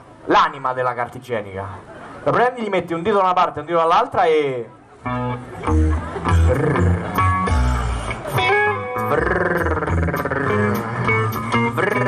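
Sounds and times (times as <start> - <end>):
live band playing blues: 5.0 - 12.0
sliding blues guitar riff: 5.0 - 12.0.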